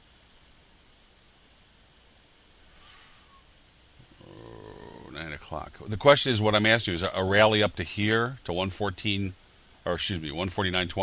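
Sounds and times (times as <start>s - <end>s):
recording hiss: 0.0s - 11.0s
man humming low: 4.0s - 5.2s.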